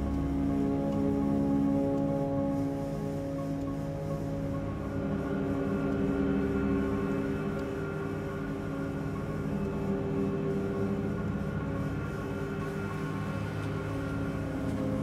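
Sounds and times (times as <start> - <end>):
dark droning film score: 0.0 - 15.0.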